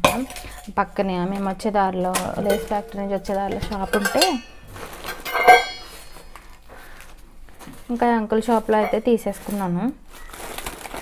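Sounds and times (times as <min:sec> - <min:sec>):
woman's voice: 0:00.0 - 0:04.4, 0:07.9 - 0:10.0
steel vessels clinking: 0:02.1 - 0:06.5, 0:08.5 - 0:09.2
metallic ring: 0:02.4 - 0:06.4.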